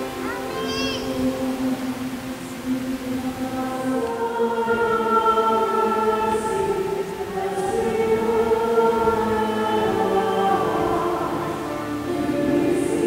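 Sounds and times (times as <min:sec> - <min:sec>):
choir singing a hymn: 0:00.0 - 0:13.0.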